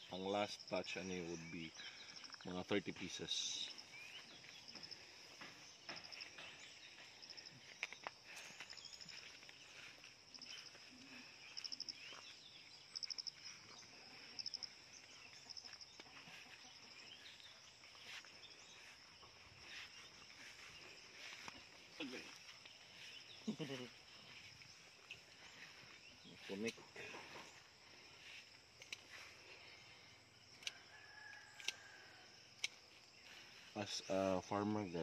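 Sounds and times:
insects buzzing and trilling: 0:00.0 - 0:35.0.

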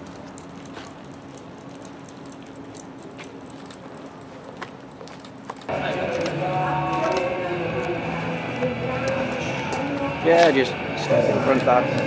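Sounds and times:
light clicks and rustles: 0:00.0 - 0:05.7
steady low hum: 0:00.0 - 0:12.0.

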